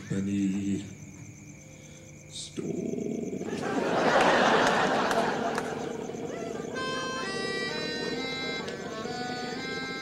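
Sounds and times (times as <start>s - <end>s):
bagpipes playing melody over drone: 6.4s - 10.0s.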